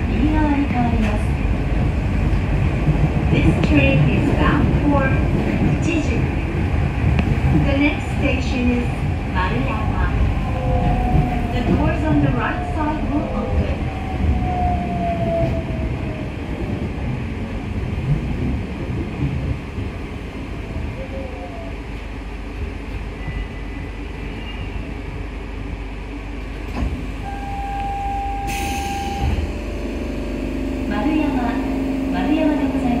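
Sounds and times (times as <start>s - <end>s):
train rumbling: 0.0s - 33.0s.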